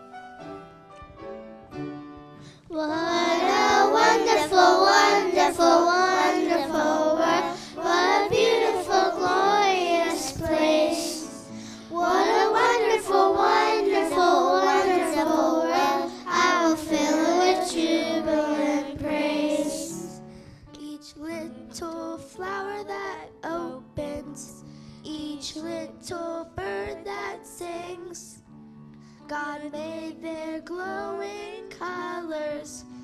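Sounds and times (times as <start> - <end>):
girls' choir singing: 2.8 - 20.2.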